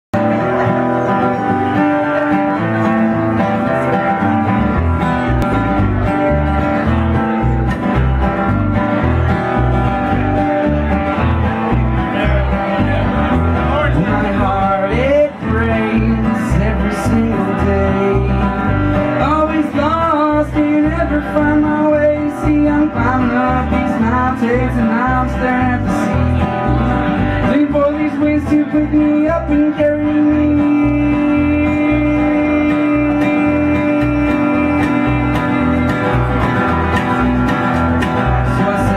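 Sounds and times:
acoustic guitar: 0:00.2 - 0:38.9
plucked upright bass: 0:00.2 - 0:38.9.

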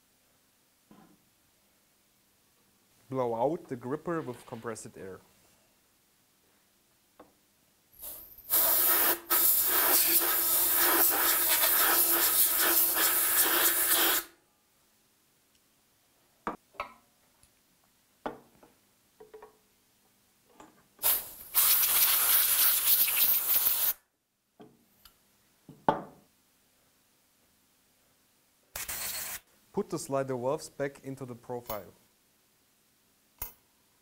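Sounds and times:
compressed air blow gun hissing: 0:08.0 - 0:14.3, 0:21.0 - 0:24.0.

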